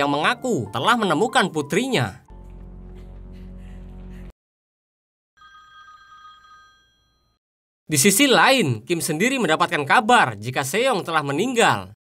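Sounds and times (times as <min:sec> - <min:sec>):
mobile phone ringing: 0:05.4 - 0:07.4.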